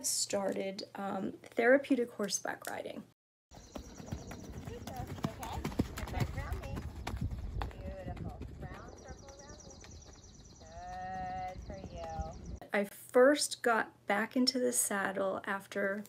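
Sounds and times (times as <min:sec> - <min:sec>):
horse hoofbeats on sand: 0:03.5 - 0:12.6.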